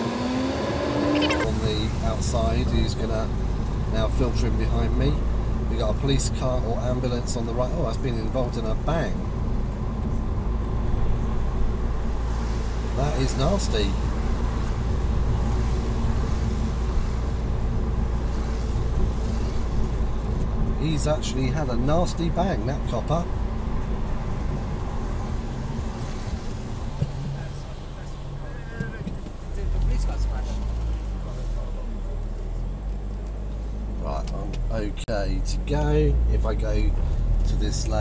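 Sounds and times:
car driving interior rumble: 0.0s - 38.0s.

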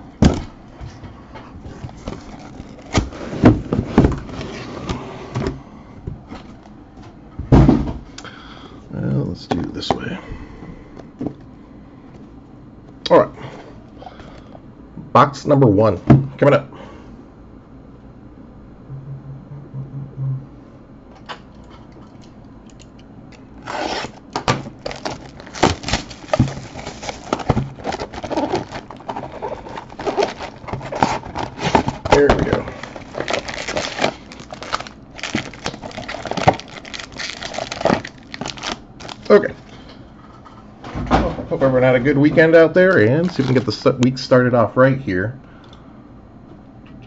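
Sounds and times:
foil card packs rustling: 0.3s - 5.6s, 23.4s - 39.9s, 42.9s - 43.9s
plastic wrap crinkling and tearing: 1.9s - 3.2s, 23.6s - 39.7s, 43.2s - 43.8s
cardboard handling: 23.6s - 39.4s.

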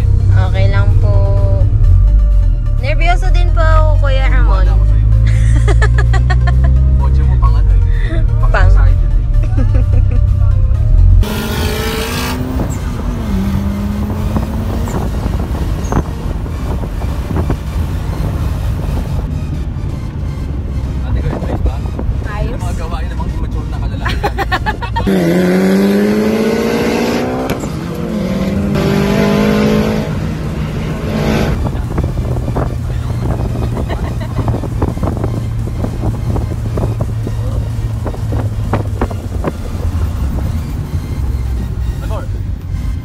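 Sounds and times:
car engine accelerating: 0.0s - 43.0s.

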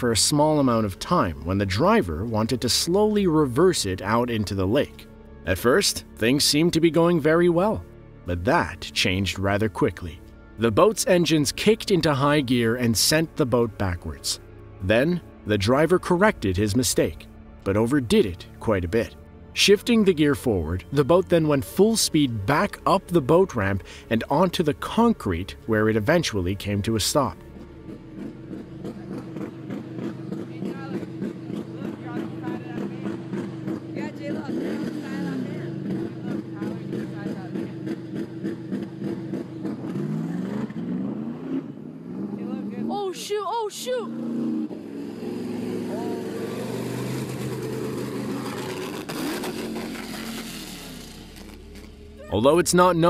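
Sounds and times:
speedboat engine revving: 26.3s - 53.0s
person shouting: 42.8s - 44.2s, 45.8s - 46.5s, 52.2s - 52.6s.

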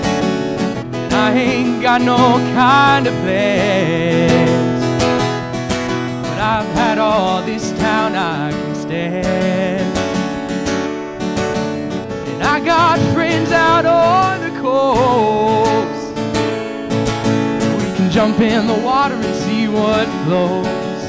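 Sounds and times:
acoustic guitar strumming: 0.0s - 21.0s
person singing with vibrato: 1.0s - 5.2s, 6.2s - 10.4s, 12.3s - 16.3s.

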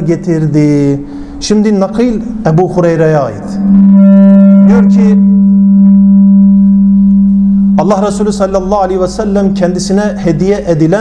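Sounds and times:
low electronic hum: 0.0s - 11.0s.

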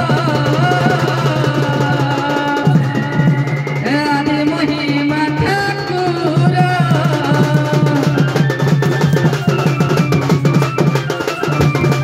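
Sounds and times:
barrel drums beaten fast: 0.0s - 12.0s
wavering melody line: 7.4s - 12.0s.

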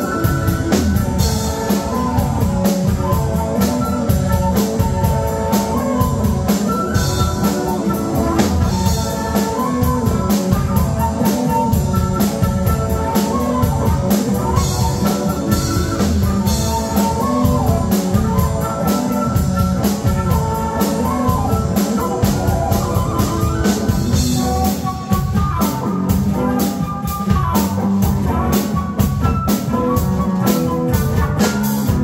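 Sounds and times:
drum kit beat: 0.0s - 32.0s
electric guitar: 0.0s - 32.0s
flute melody: 0.0s - 32.0s.

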